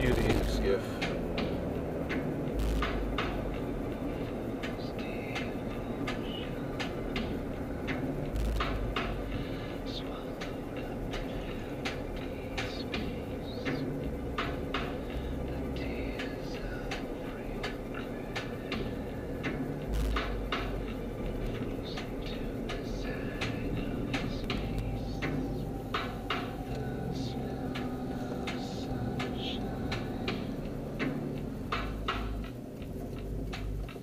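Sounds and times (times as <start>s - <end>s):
engine and road rumble: 0.0s - 34.0s.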